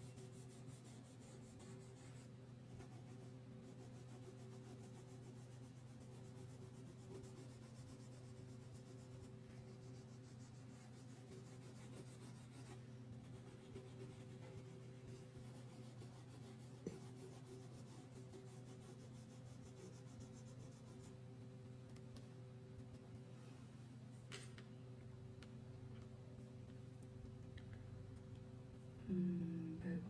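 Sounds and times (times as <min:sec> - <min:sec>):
crayon scratching on paper: 0:00.0 - 0:21.2.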